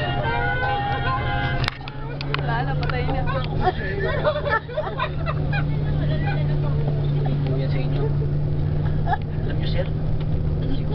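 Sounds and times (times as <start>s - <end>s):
bus engine droning: 0.0s - 10.9s.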